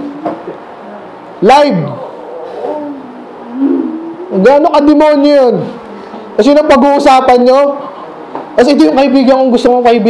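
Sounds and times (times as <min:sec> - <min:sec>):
man humming: 0:01.9 - 0:04.4.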